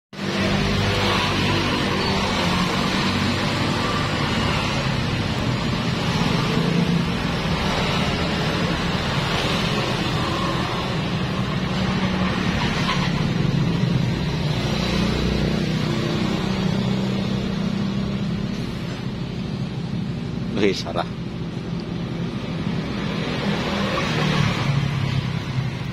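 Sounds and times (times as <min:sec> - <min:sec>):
street and wind noise hiss: 0:00.2 - 0:25.9.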